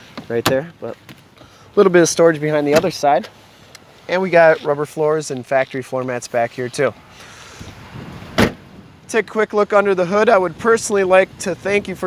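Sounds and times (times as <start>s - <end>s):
car door shutting thud: 8.3s - 8.7s.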